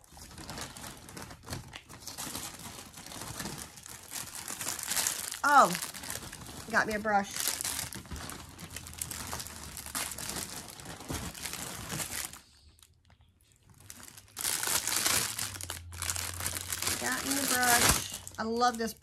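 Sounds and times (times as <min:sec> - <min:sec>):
plastic packaging crinkling: 0:00.0 - 0:19.0.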